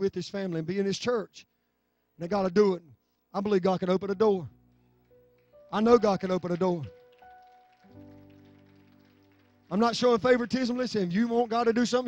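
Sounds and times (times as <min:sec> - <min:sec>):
soft background music: 0:03.4 - 0:12.0.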